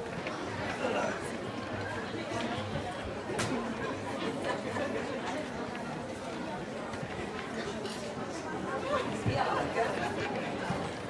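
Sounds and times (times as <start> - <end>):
crowd chattering: 0.0 - 11.0.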